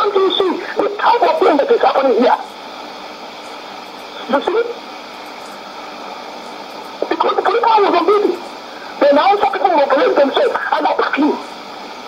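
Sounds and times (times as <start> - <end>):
voice speaking through radio: 0.0 - 2.4, 4.2 - 4.8, 7.0 - 8.4, 9.0 - 11.4
faint steady tones: 0.0 - 12.0
radio reception hiss: 0.0 - 12.0.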